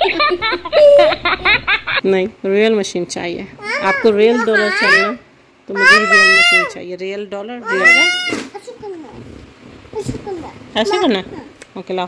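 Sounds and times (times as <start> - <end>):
child squealing: 3.6 - 6.8, 7.7 - 8.4.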